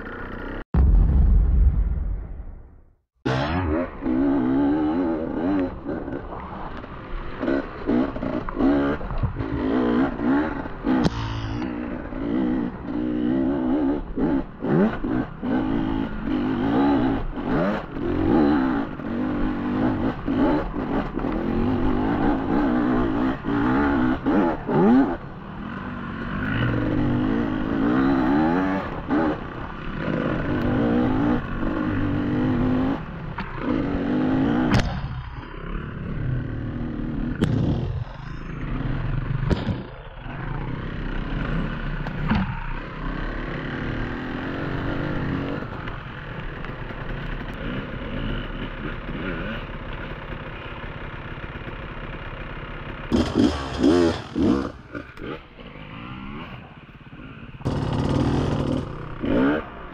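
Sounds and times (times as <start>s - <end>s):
motorcycle engine revving: 0.0s - 1.0s, 3.3s - 59.9s.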